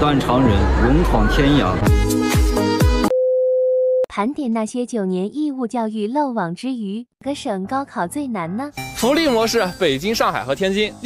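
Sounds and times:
steady test tone beep: 3.1s - 4.1s.

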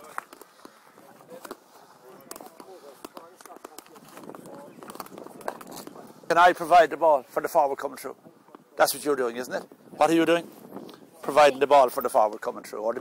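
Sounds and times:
sharp taps of sticks and ball: 2.2s - 5.7s.

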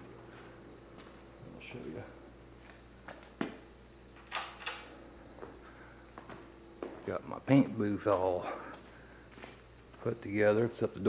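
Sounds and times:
scuffing on concrete floor: 0.0s - 1.4s, 2.5s - 3.8s, 5.2s - 10.8s
crickets chirping: 0.0s - 11.0s.

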